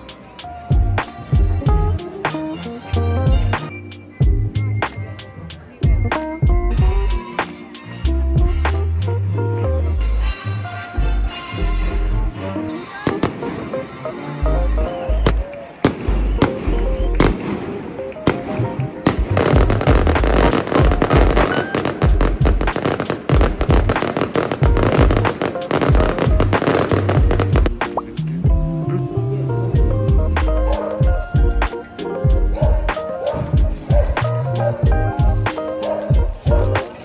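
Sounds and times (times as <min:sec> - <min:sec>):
background music: 0:00.0 - 0:37.0
fireworks crackling: 0:13.0 - 0:14.1, 0:15.2 - 0:28.3
fireworks bangs: 0:15.2 - 0:27.8.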